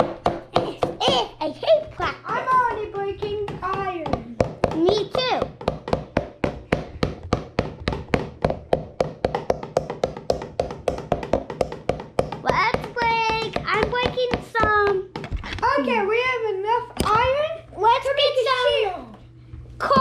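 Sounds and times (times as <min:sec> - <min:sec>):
child's voice: 0:00.5 - 0:05.6, 0:12.4 - 0:19.2, 0:19.8 - 0:20.0.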